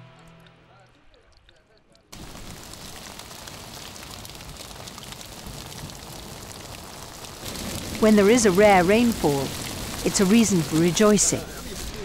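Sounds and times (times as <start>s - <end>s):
heavy rain falling: 2.1s - 12.0s.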